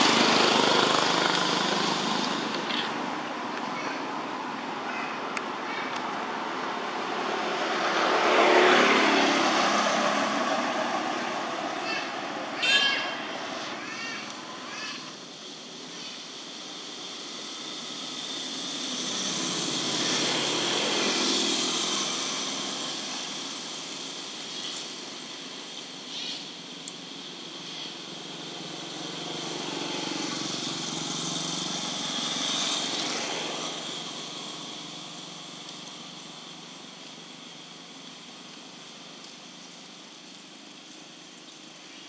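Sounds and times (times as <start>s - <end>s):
traffic noise: 0.0s - 42.0s.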